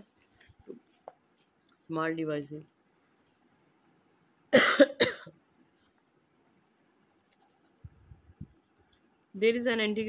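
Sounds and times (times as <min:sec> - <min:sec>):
person coughing: 0:04.6 - 0:05.3.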